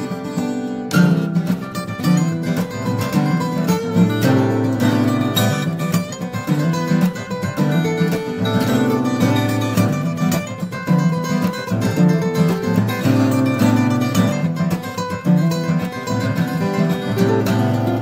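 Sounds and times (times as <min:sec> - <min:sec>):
acoustic guitars fingerstyle: 0:00.0 - 0:18.0.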